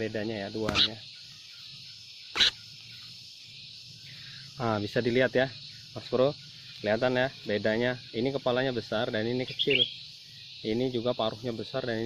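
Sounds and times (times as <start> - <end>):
insects droning: 0.0 - 12.0
harsh bird call: 0.5 - 1.1, 2.2 - 2.7, 9.5 - 10.1.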